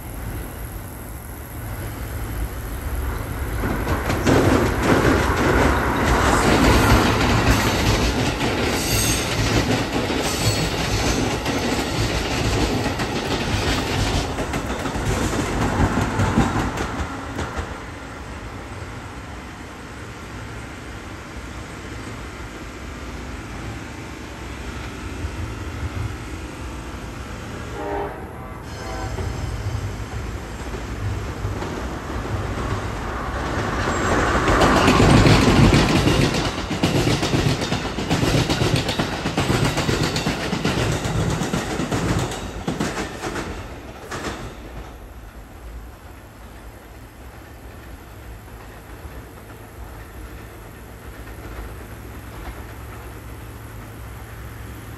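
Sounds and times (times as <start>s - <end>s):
electric train passing: 0.0s - 54.9s
train horn: 27.6s - 30.0s.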